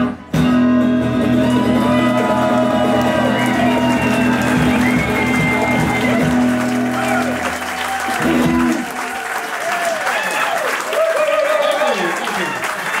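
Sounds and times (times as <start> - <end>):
audience applauding: 1.3 - 13.0.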